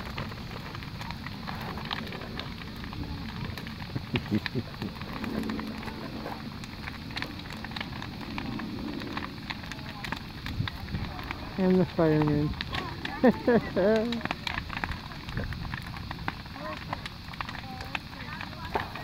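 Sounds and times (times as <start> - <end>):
bonfire rushing: 0.0 - 19.0
fire crackling and popping: 0.0 - 19.0.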